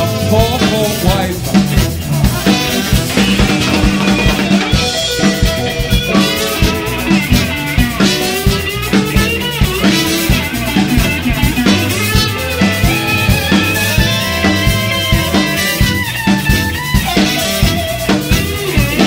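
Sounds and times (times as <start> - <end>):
bass guitar: 0.0 - 19.0
drum kit steady beat: 0.0 - 19.0
electric guitar: 0.0 - 19.0
trumpet: 1.6 - 19.0.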